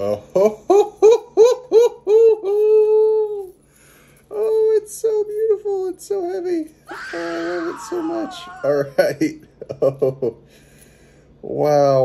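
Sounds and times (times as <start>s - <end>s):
man exclaiming excitedly: 6.9s - 9.3s.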